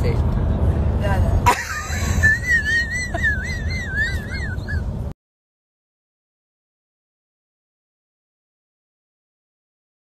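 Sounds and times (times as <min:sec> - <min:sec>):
road noise inside car: 0:00.0 - 0:05.2.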